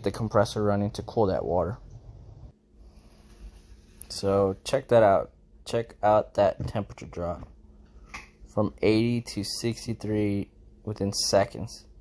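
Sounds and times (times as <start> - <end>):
refrigeration compressor hum: 0.0 - 12.0.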